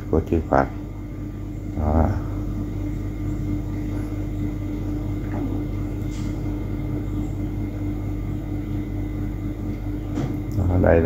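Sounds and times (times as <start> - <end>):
steady mechanical drone: 0.0 - 11.0.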